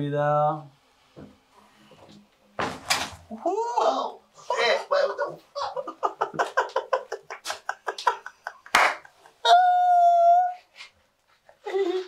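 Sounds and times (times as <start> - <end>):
man laughing: 5.6 - 9.9.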